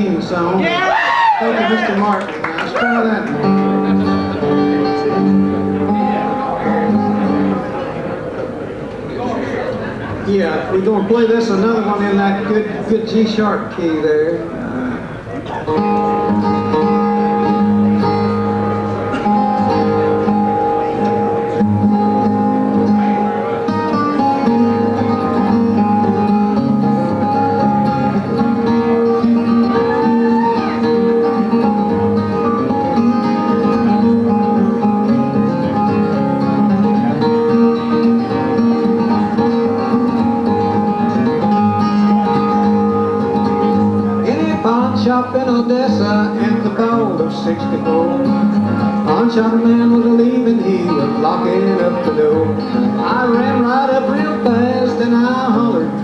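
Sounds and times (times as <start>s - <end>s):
acoustic guitars playing: 0.0s - 56.0s.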